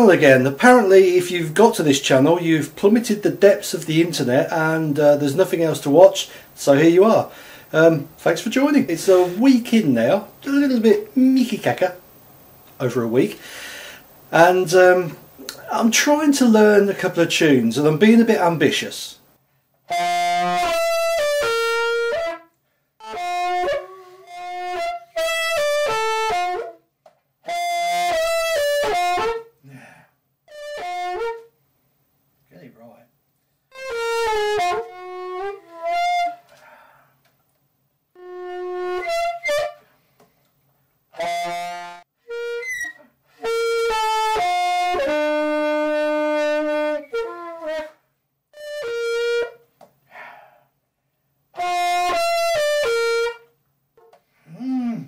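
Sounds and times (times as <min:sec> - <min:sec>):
alto saxophone notes: 0:19.8 - 0:26.8, 0:27.4 - 0:29.8, 0:30.5 - 0:31.6, 0:33.7 - 0:36.9, 0:38.1 - 0:39.9, 0:41.1 - 0:48.0, 0:48.6 - 0:49.6, 0:51.6 - 0:53.5, 0:54.5 - 0:55.0.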